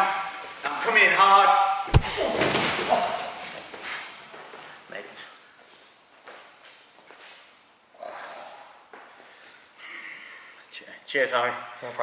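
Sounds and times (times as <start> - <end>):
kick thud on gym mat: 1.9 - 2.9.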